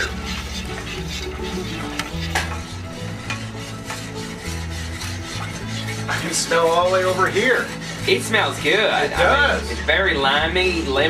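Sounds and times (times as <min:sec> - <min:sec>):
spoon stirring in saucepan: 0:00.0 - 0:09.7
background music with bass: 0:00.0 - 0:11.0.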